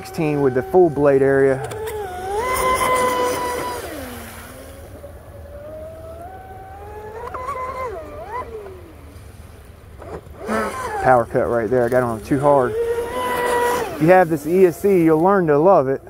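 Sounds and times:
high-pitched electric motor whine: 0:00.0 - 0:16.0.

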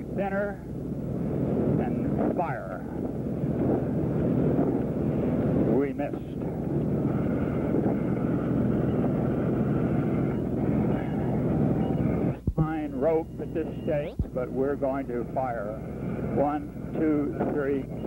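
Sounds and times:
light aircraft engine drone: 0:00.0 - 0:18.0.

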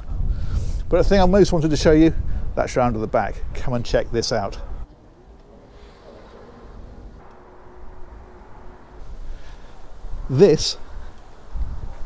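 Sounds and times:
garage door motor hum: 0:05.2 - 0:10.2.

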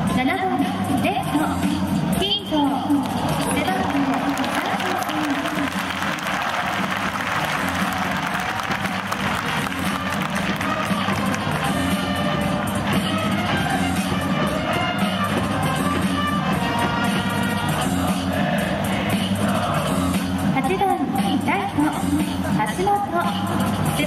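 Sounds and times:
music over stadium loudspeakers: 0:00.0 - 0:24.0
crowd clapping and cheering: 0:02.9 - 0:19.3.

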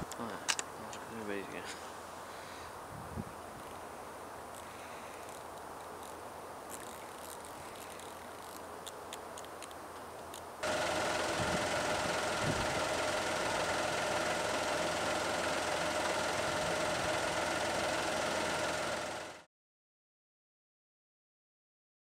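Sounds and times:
vehicle engine idling: 0:10.6 - 0:19.5.

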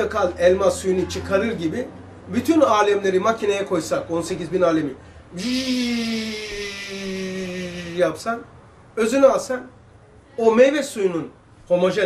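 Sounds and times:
man imitating juicer hum: 0:05.3 - 0:08.2.

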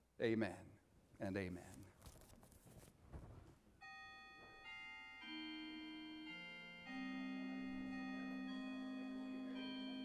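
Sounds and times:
faint handling sound: 0:01.6 - 0:03.6
organ playing held chord: 0:05.2 - 0:10.0.

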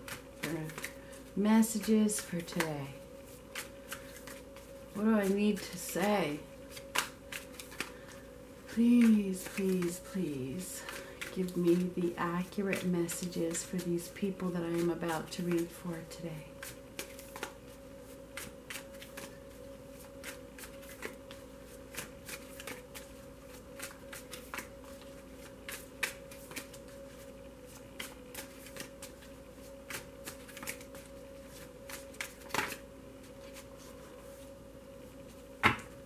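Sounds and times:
cards shuffling: 0:00.0 - 0:02.7, 0:03.3 - 0:15.9, 0:16.5 - 0:34.0
faint steady hum: 0:00.0 - 0:36.0.

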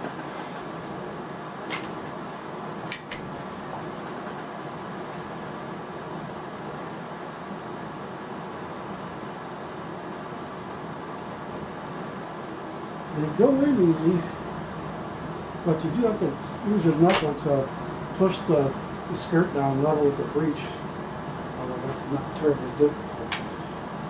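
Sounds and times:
mechanical hum: 0:00.0 - 0:24.0.

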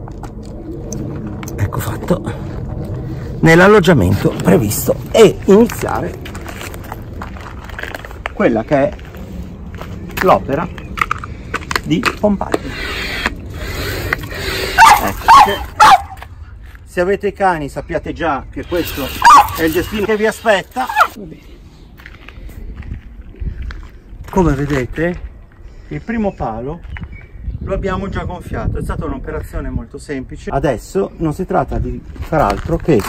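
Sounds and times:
wind rumble on microphone: 0:00.0 - 0:12.7, 0:21.6 - 0:33.0
footsteps on gravel: 0:04.1 - 0:12.6, 0:19.0 - 0:25.4, 0:32.0 - 0:33.0.

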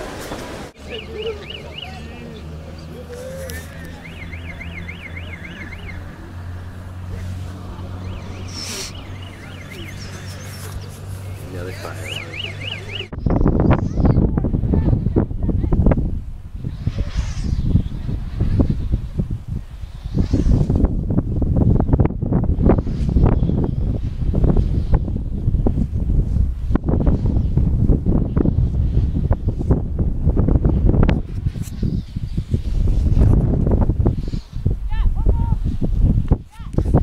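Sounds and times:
wind buffeting microphone: 0:00.0 - 0:37.0.

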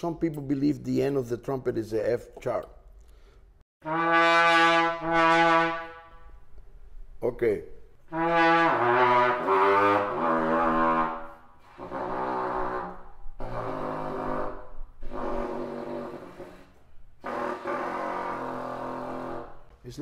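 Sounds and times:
low trumpet notes: 0:03.8 - 0:06.4, 0:08.1 - 0:19.7.

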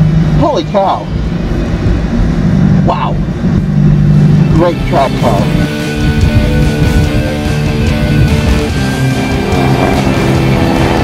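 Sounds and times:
car engine droning: 0:00.0 - 0:11.0.

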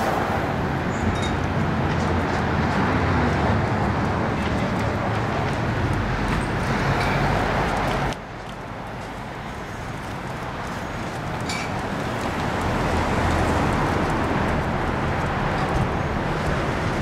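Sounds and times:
street traffic noise: 0:00.0 - 0:17.0.

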